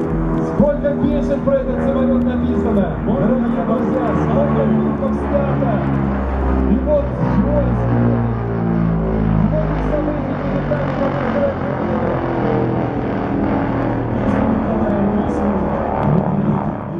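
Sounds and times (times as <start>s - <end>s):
deep rumble: 0.0s - 16.9s
propeller aircraft droning overhead: 0.0s - 16.9s.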